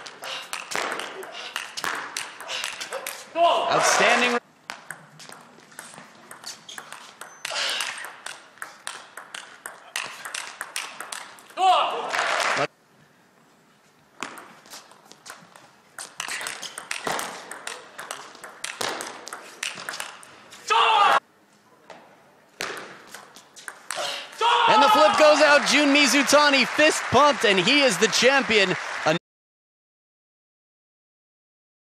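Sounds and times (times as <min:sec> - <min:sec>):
table tennis ball clicks: 0:04.7 - 0:11.6, 0:16.0 - 0:20.3.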